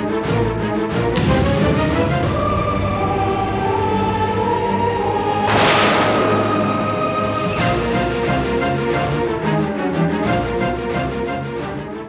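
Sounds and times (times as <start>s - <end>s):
sustained orchestral notes: 0.6s - 11.9s
wordless choir voices: 2.4s - 9.2s
low drone: 3.0s - 9.6s.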